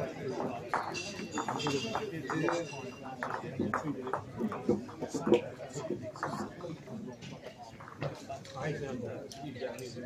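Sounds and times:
many people talking: 0:00.0 - 0:10.0
bowls knocking together: 0:00.4 - 0:05.4.

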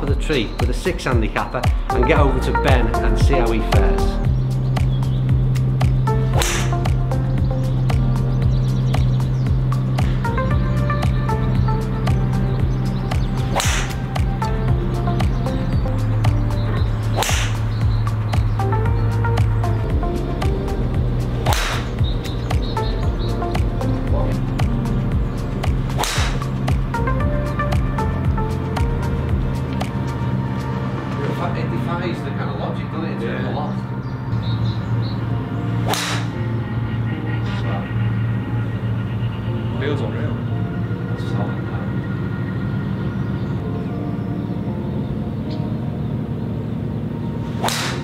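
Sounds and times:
background music with bass line: 0:00.0 - 0:48.0
golf club striking ball: 0:05.9 - 0:07.0, 0:13.4 - 0:14.2, 0:17.0 - 0:17.8, 0:21.4 - 0:22.1, 0:25.6 - 0:26.8, 0:35.8 - 0:36.5, 0:47.5 - 0:48.0.

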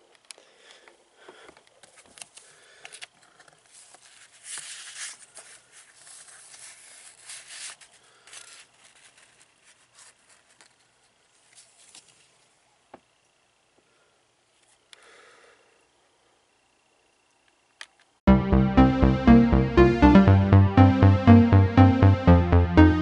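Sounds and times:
paper rustling and crinkling: 0:01.8 - 0:12.5.

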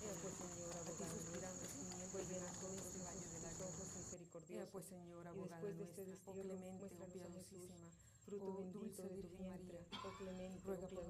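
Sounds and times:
insects droning: 0:00.0 - 0:04.2.

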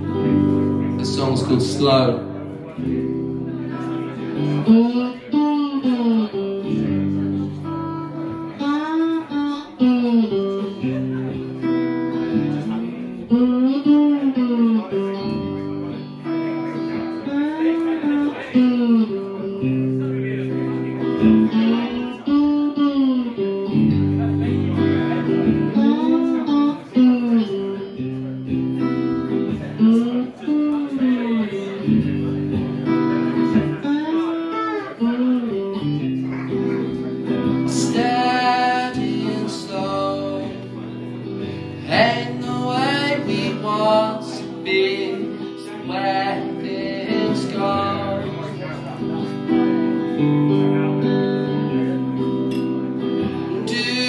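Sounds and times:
held guitar chords: 0:00.0 - 0:54.0.

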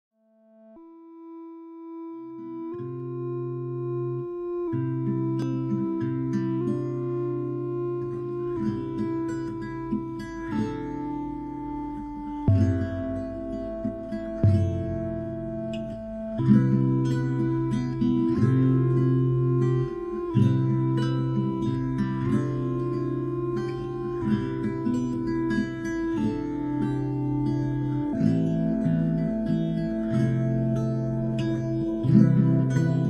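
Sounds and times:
sustained synth chords: 0:00.4 - 0:33.0
plucked synth notes: 0:00.5 - 0:33.0.

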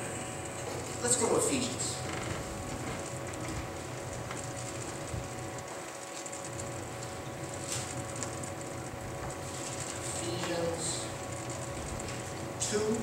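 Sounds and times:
room hum: 0:00.0 - 0:13.0.

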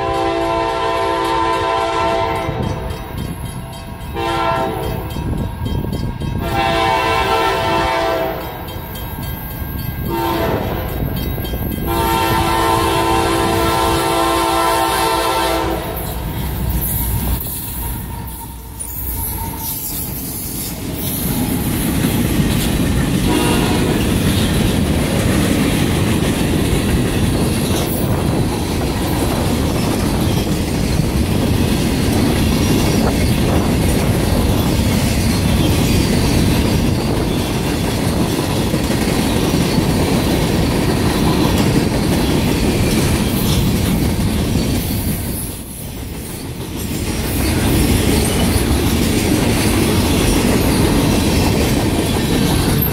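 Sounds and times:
freight train rolling past: 0:00.0 - 0:52.9
wheels clicking over rail joints: 0:15.8 - 0:52.9.

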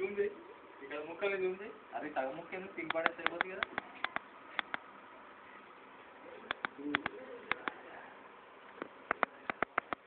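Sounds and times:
sharp clicks: 0:02.9 - 0:04.8, 0:06.5 - 0:07.8, 0:08.8 - 0:10.0.

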